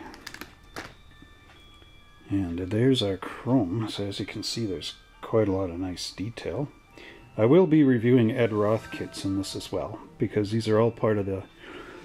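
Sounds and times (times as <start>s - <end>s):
plastic parts clicking and rustling: 0.0s - 1.0s.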